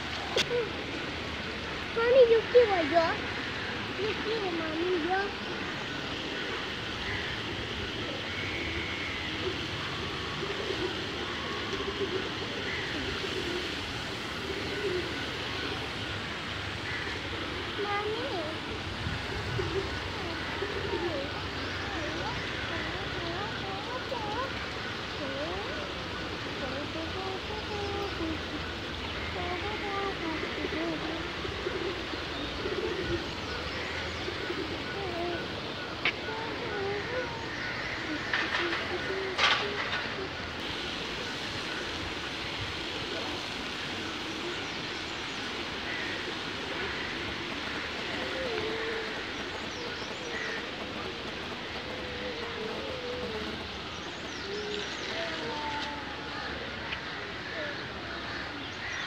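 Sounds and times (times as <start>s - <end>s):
rushing hiss: 0.0s - 59.0s
shallow river rushing: 33.0s - 58.9s.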